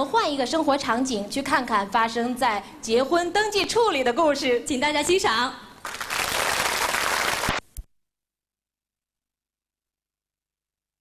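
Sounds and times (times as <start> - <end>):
audience applauding: 5.8 - 7.6.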